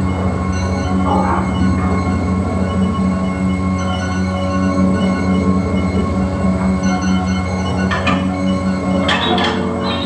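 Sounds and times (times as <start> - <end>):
low drone of held tones: 0.0 - 10.0.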